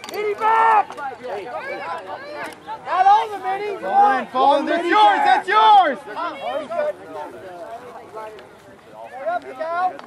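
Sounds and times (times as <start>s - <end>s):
voices shouting: 0.0s - 7.5s
people talking and chattering: 0.0s - 10.0s.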